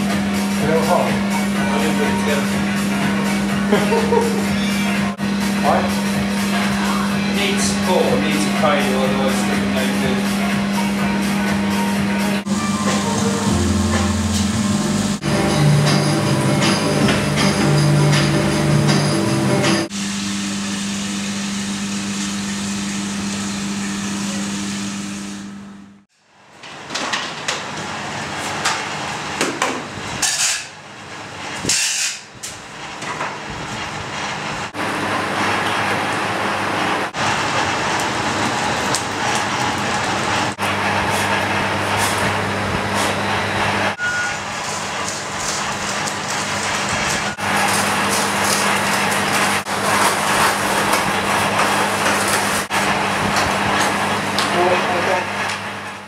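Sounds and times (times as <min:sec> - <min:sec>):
workshop machinery hum: 0:00.0 - 0:56.0.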